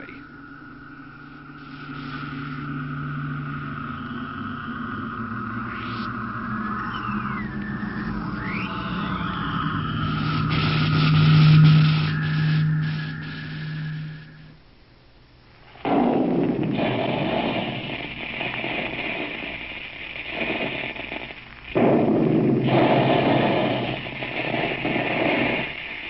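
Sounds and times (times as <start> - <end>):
radio static: 0.0 - 14.6, 15.7 - 26.0
whistling squeals gliding in pitch: 0.0 - 14.6
high steady tone: 0.0 - 14.8
radio low hum: 0.0 - 26.0.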